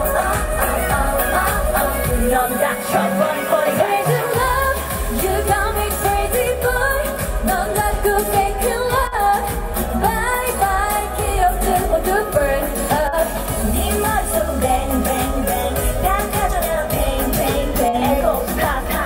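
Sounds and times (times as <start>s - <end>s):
pop dance track: 0.0s - 19.0s
women singing into microphones: 0.0s - 19.0s.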